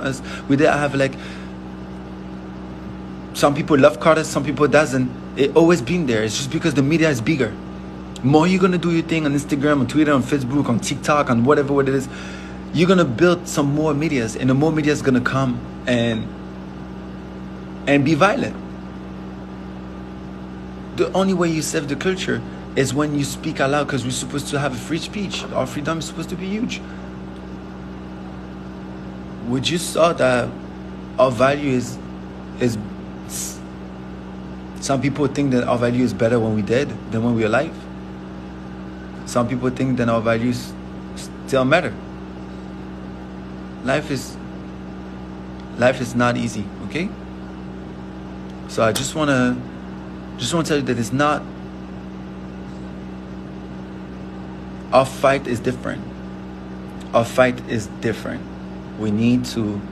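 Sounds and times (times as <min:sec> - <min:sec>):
low background hum: 0:00.0 - 0:59.9.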